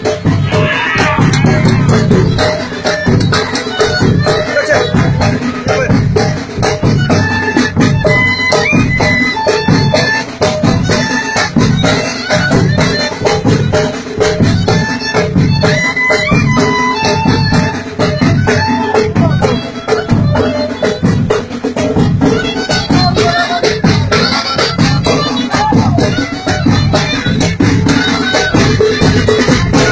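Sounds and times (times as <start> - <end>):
fast drum beat: 0.0 - 29.9
high held melody: 0.0 - 29.9.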